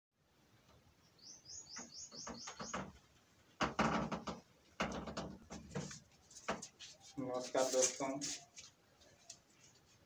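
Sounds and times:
rustle: 0:00.7 - 0:10.0
bird chirping: 0:00.9 - 0:03.2.

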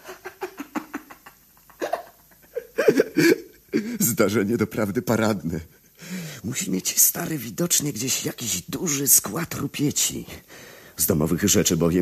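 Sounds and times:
man laughing: 0:00.0 - 0:04.2.

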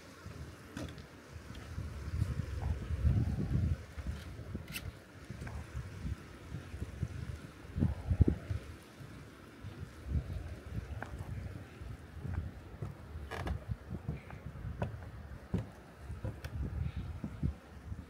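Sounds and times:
wind buffeting microphone: 0:00.2 - 0:18.0.

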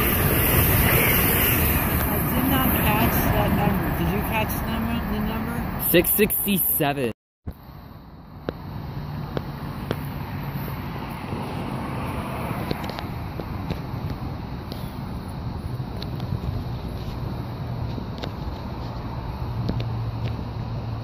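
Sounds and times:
electric train rumbling: 0:00.0 - 0:06.6.

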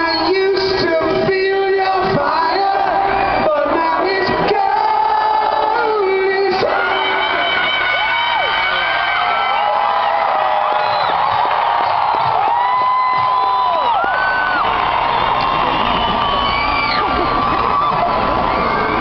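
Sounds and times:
crowd cheering and screaming: 0:00.0 - 0:19.0.

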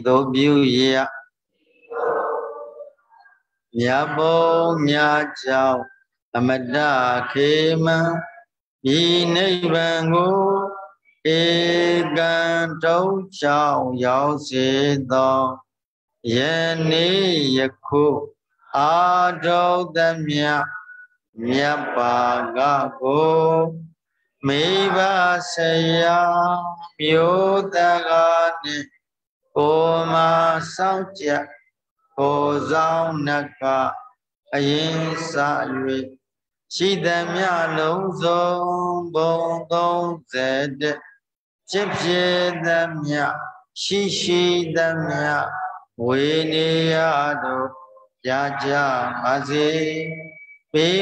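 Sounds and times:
man chanting: 0:00.0 - 0:01.4, 0:03.7 - 0:51.0.

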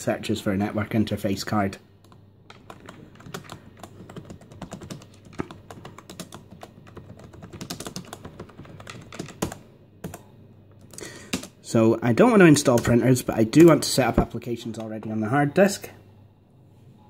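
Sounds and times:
typing on computer keyboard: 0:02.0 - 0:11.5.

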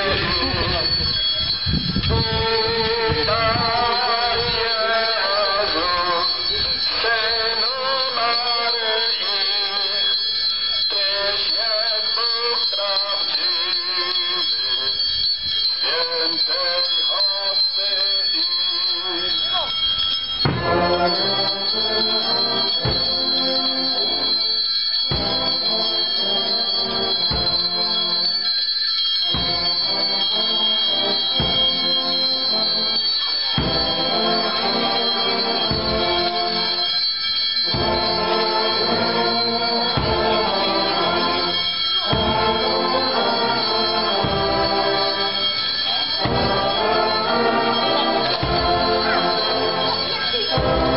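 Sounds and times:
hymn being sung: 0:00.0 - 0:01.5, 0:02.1 - 0:19.9, 0:20.5 - 0:28.5, 0:29.2 - 0:50.9.

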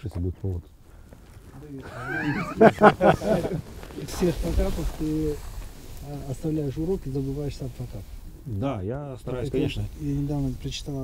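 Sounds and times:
person laughing: 0:01.8 - 0:03.7.

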